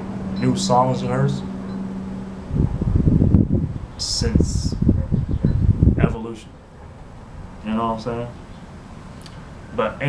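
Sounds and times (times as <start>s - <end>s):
wind buffeting microphone: 0.0s - 8.7s
steady low hum: 0.0s - 10.0s.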